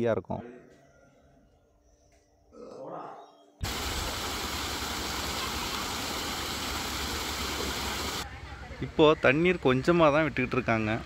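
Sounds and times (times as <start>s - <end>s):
water rushing along canal: 3.6s - 8.2s.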